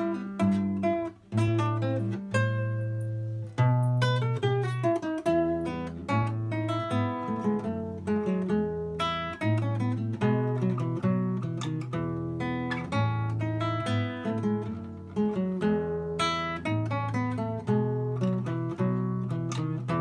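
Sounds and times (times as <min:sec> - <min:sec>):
fingerstyle classical guitar: 0:00.0 - 0:20.0.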